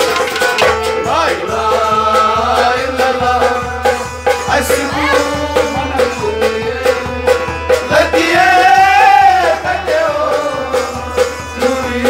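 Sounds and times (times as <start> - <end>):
hand drum beat: 0.0 - 11.0
harmonium: 0.0 - 12.0
man singing a folk song: 0.9 - 12.0.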